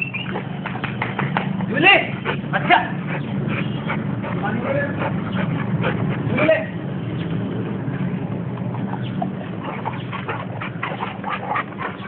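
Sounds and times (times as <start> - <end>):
dogs panting: 0.2 - 12.0.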